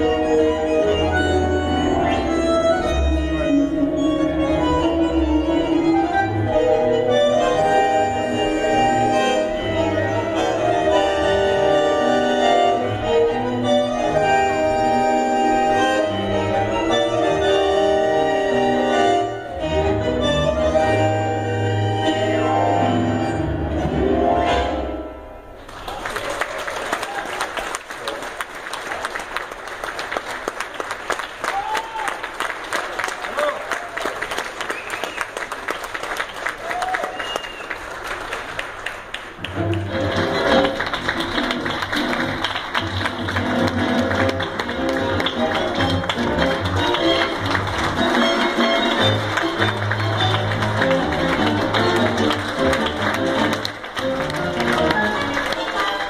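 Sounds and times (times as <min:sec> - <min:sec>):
tango orchestra playing: 0:00.0 - 0:25.7, 0:38.0 - 0:56.0
audience applauding: 0:25.6 - 0:56.0.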